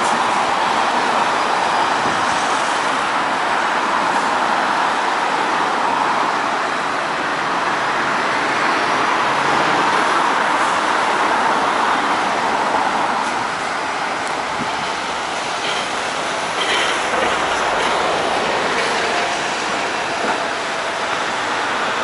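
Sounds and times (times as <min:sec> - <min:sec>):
road traffic passing: 0:00.0 - 0:22.0.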